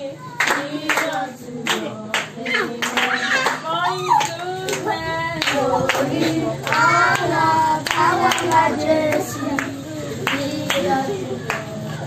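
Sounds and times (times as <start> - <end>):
children singing: 0.0 - 12.0
children clapping in time: 0.3 - 12.0.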